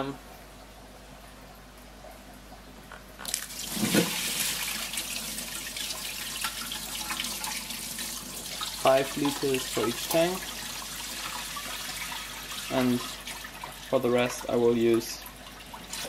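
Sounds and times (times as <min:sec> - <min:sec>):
water pouring into aquarium: 0:03.2 - 0:16.0.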